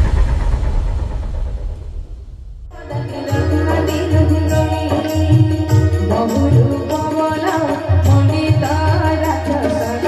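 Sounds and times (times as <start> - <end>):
low rumbling logo sound effect: 0.0 - 2.8.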